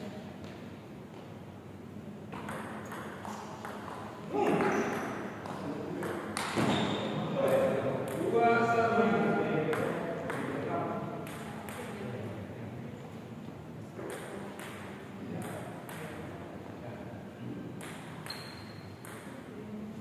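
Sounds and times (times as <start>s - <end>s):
table tennis ball clicks: 17.8s - 19.4s.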